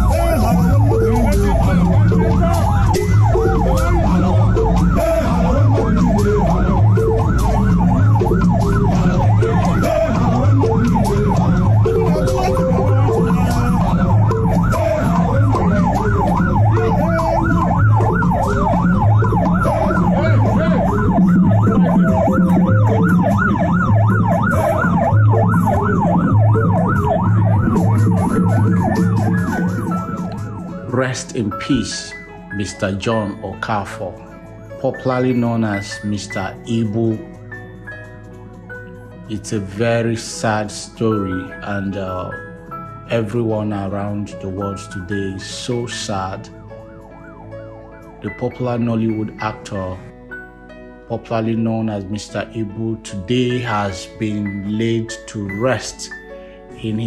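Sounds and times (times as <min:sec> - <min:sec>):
siren yelping: 0:00.0 - 0:31.0, 0:46.1 - 0:50.5.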